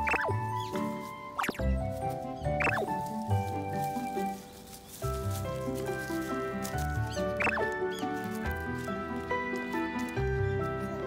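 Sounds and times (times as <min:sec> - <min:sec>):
squeaky rising and falling glides: 0:00.0 - 0:01.7, 0:02.5 - 0:02.9, 0:07.4 - 0:07.7
background music melody: 0:00.0 - 0:11.0.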